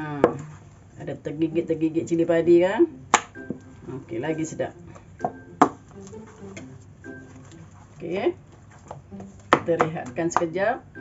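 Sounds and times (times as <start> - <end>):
spoon stirring thick batter: 3.6 - 10.5.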